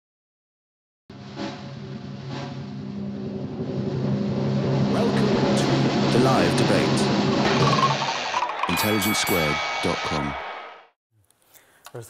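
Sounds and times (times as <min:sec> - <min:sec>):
low steady drone: 0:01.2 - 0:07.8.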